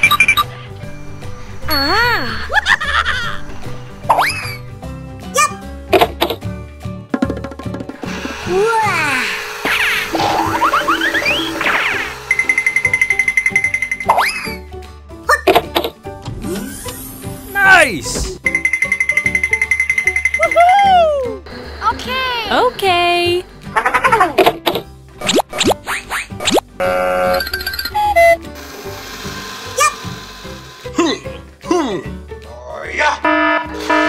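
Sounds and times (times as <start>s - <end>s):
background music: 0.0s - 34.0s
short buzzing tone: 9.8s - 14.1s, 33.2s - 34.0s
rapid high-pitched trilling beep: 10.6s - 14.1s, 18.5s - 20.6s.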